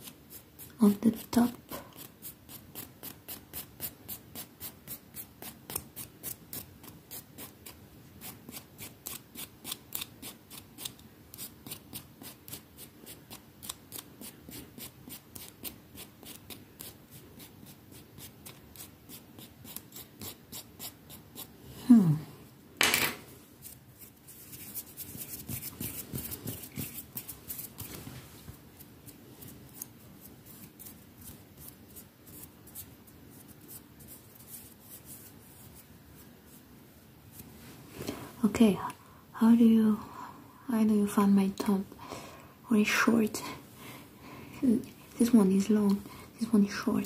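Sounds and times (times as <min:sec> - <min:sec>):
nail file rasping on fingernail: 0:08.2 - 0:12.6, 0:14.8 - 0:21.5.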